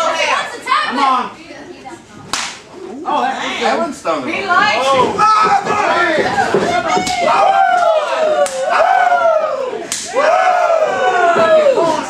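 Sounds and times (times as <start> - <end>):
open-hand slap on bare chest: 2.3 - 2.6.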